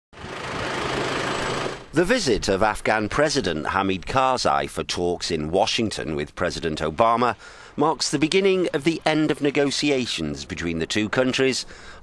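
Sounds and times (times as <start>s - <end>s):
vehicle engine rattling: 0.2s - 2.0s.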